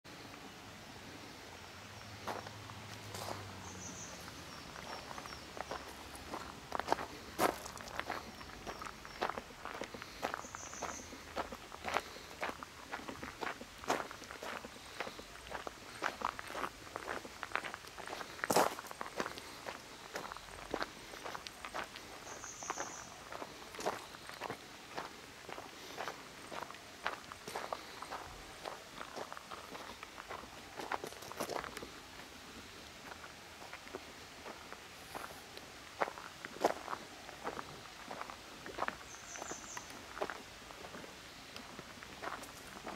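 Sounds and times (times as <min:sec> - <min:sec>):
footsteps on gravel: 0:02.2 - 0:42.9.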